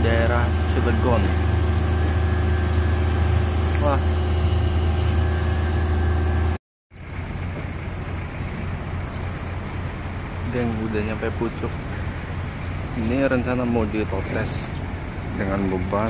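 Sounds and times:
heavy machinery engine humming: 0:00.0 - 0:16.0.

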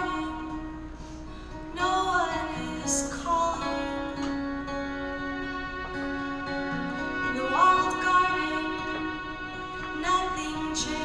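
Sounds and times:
acoustic guitar: 0:00.0 - 0:11.0
violin playing slow tune: 0:03.6 - 0:11.0.

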